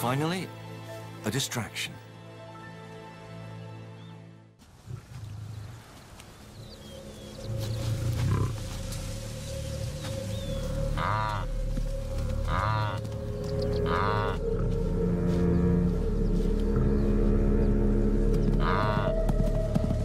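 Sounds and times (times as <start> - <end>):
low music bed: 0.0 - 4.6, 5.6 - 20.0
wildebeest calling: 10.5 - 11.6, 12.4 - 14.8, 18.4 - 19.2.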